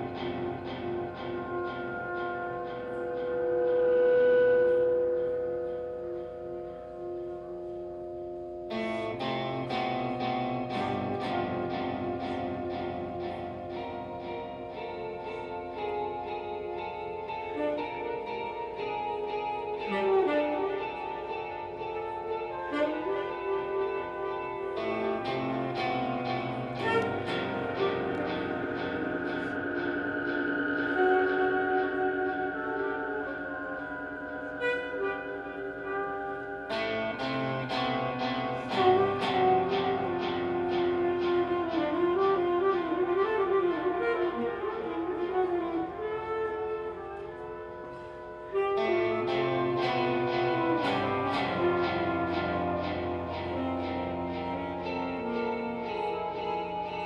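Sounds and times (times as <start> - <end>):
experimental music: 0.0 - 57.0
long held tone: 0.0 - 57.0
picked guitar notes: 0.0 - 57.0.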